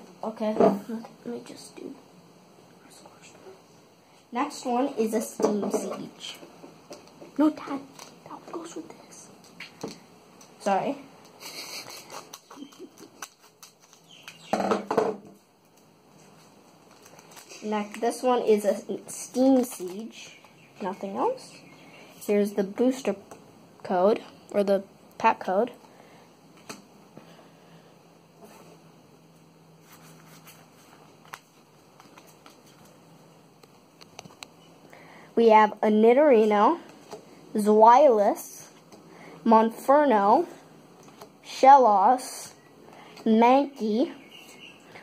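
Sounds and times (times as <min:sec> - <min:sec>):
cards rustling: 0:11.2 - 0:14.5, 0:15.8 - 0:20.6, 0:29.8 - 0:33.0.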